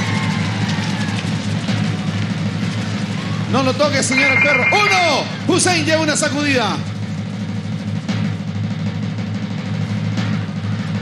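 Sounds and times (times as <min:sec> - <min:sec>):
drum roll: 0:00.0 - 0:11.0.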